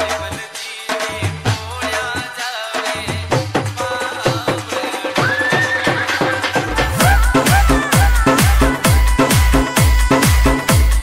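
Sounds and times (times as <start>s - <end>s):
dance remix music: 3.8s - 11.0s.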